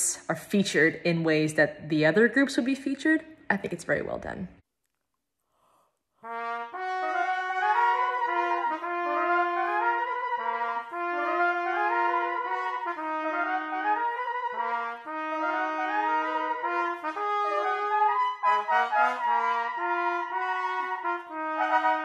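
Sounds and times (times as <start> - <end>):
trumpets playing a march: 6.2 - 22.0.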